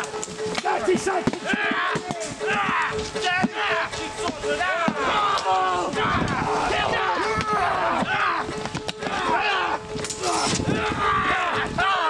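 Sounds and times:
weapons striking wooden shields: 0.0 - 6.4
men shouting: 0.0 - 12.0.

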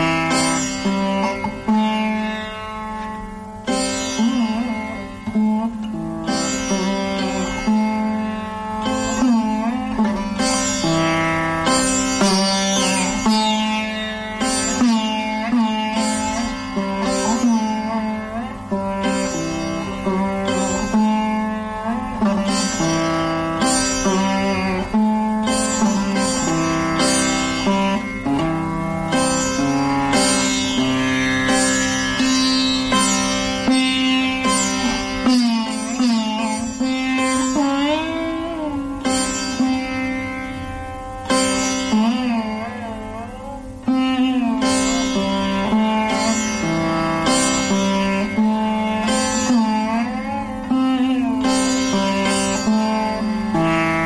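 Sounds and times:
sitar playing: 0.0 - 54.0.

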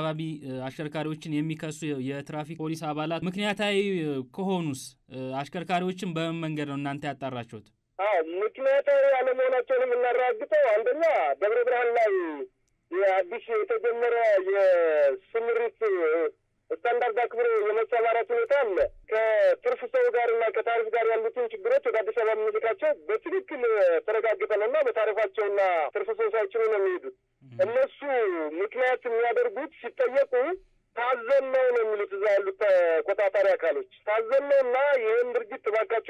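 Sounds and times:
person talking over telephone: 0.0 - 36.0.

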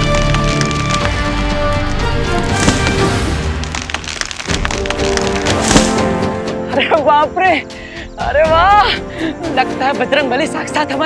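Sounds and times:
wood cracking and splintering: 0.0 - 6.2
dramatic background music: 0.0 - 11.0.

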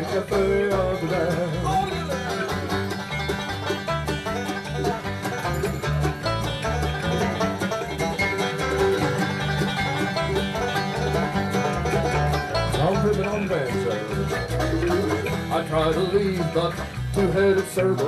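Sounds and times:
banjo picking quick runs: 0.0 - 18.0
bluegrass band playing: 0.0 - 18.0.

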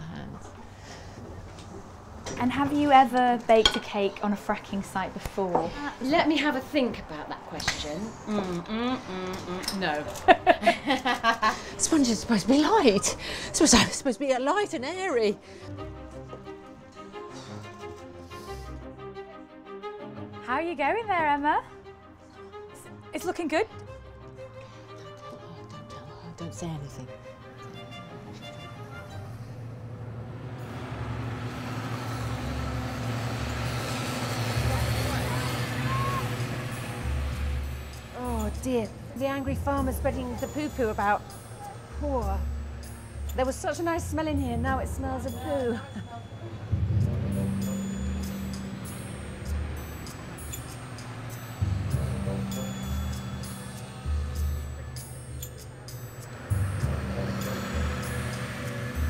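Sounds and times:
background music: 1.9 - 59.0
tractor engine drone: 25.3 - 59.0.

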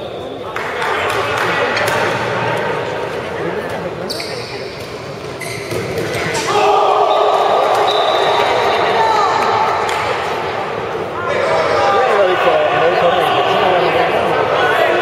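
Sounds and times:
echoing shouts: 6.4 - 15.0.

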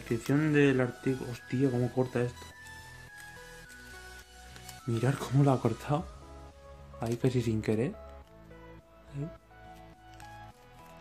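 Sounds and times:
person speaking: 0.0 - 2.5, 4.8 - 6.2, 9.0 - 9.4
quiet instrumental music: 0.0 - 11.0.

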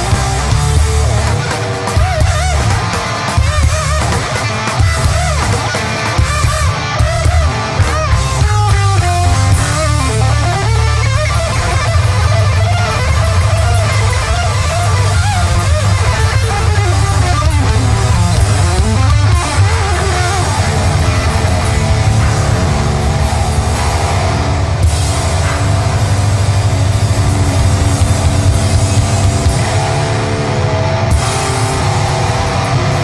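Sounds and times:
bass: 0.0 - 33.0
distorted electric guitar: 0.0 - 33.0
drums: 0.0 - 33.0.

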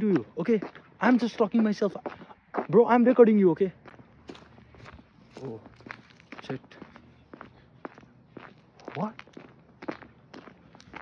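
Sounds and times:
footsteps walking: 0.1 - 11.0.

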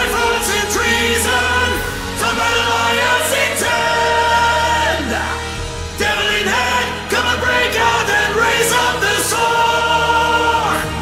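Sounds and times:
choir-like voices holding notes: 0.0 - 11.0
orchestral music: 0.0 - 11.0.

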